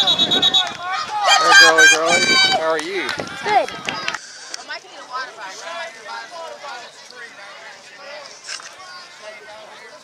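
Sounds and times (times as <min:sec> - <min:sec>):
high whistle-like tone: 0:00.0 - 0:00.8
children shouting: 0:00.0 - 0:02.7.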